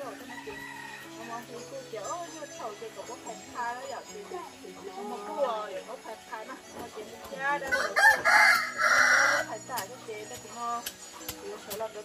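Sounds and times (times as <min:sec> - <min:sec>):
rooster crowing: 0:00.2 - 0:01.1, 0:07.7 - 0:09.5.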